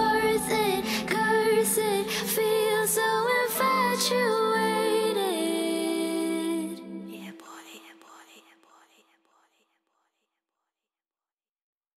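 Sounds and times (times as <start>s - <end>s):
breathy whispered vocal: 0.0s - 10.4s.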